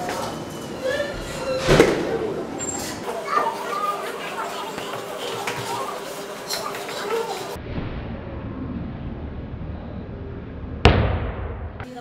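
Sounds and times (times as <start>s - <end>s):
children's voices: 0.0s - 7.6s
faint hum: 0.0s - 12.0s.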